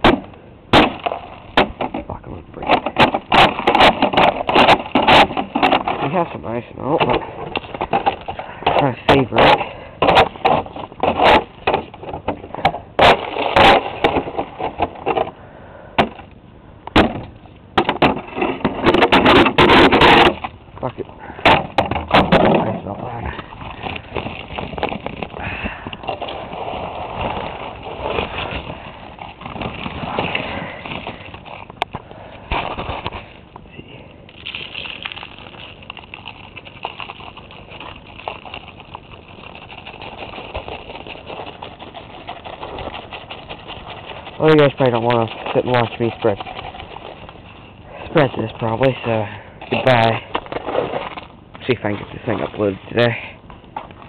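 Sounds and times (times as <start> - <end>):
broom scraping and knocking on ice: 0.0 - 15.3, 17.8 - 31.7, 34.6 - 47.6
ice melt rustling and scattering: 22.5 - 31.7, 34.3 - 53.2.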